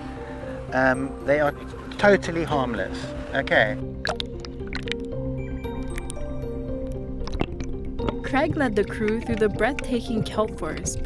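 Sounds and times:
background music with held notes: 0.0 - 11.0
water sloshing and splashing: 1.6 - 11.0.

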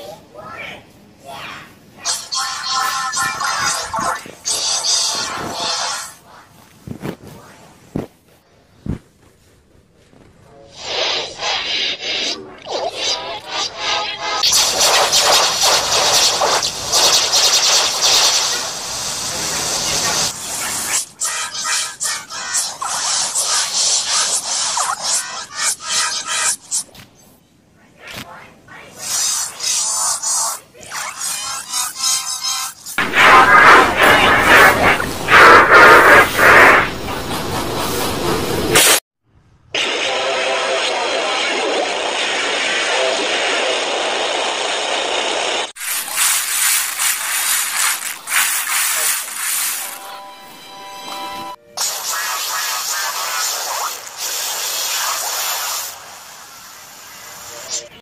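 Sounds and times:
distorted music clips with voice: 2.0 - 6.2, 19.2 - 26.8, 33.0 - 36.9, 39.8 - 44.8.

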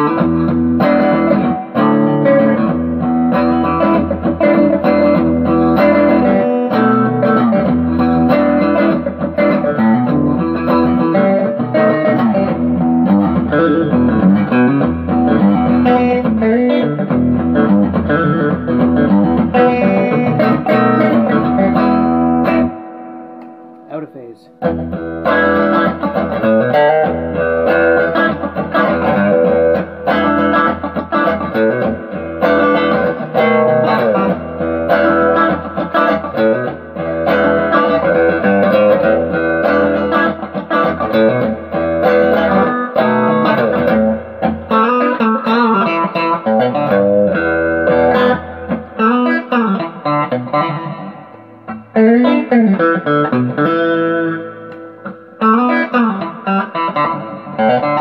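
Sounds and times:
electric guitar riffs and chords: 0.0 - 58.0.

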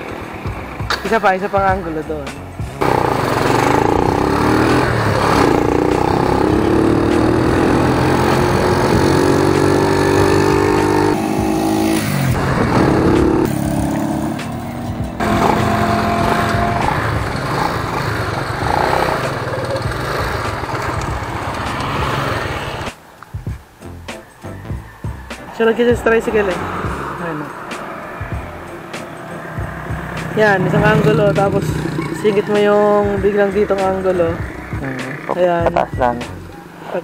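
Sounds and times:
small motorcycle engine running: 2.8 - 22.5
wind rushing over microphone: 11.7 - 13.8.

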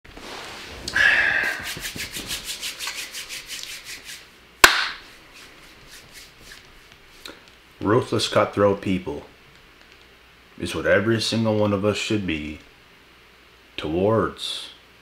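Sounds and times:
rustle on leather couch: 0.1 - 0.9.

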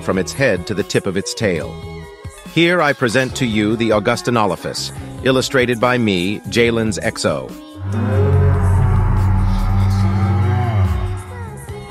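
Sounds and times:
low moo-like dinosaur bellow: 7.8 - 11.6.

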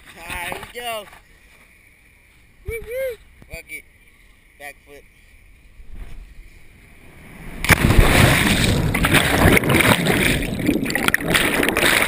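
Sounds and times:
rush of air: 5.8 - 12.0
underwater churning and bubbling: 6.8 - 12.0
loud splash into water: 7.5 - 12.0.

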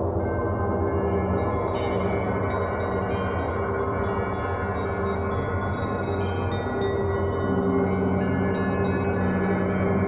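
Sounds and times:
small metal chimes tinkling: 1.0 - 10.0.

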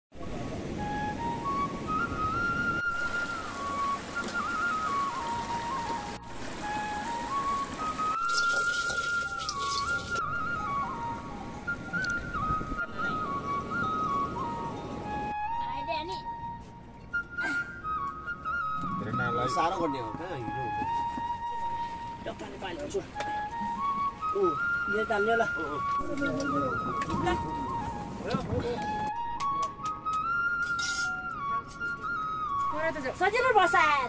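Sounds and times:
solo flute melody: 0.2 - 34.0.

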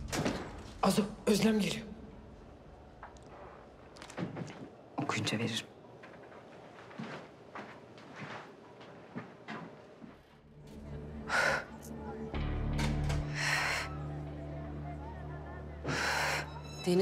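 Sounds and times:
low music drone: 10.5 - 17.0.

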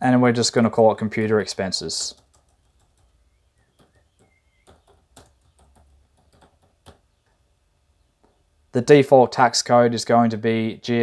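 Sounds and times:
computer keyboard keys clicking: 2.1 - 3.1, 3.7 - 7.0.

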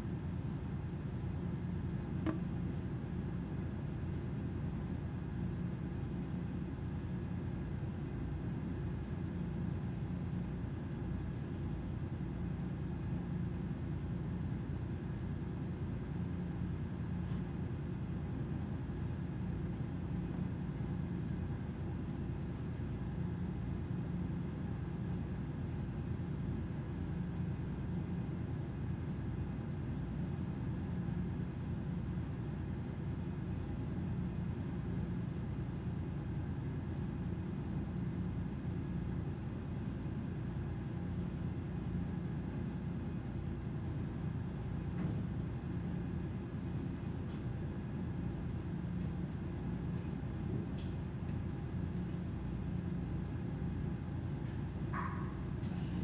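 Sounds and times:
faint constant hum: 0.0 - 56.0.

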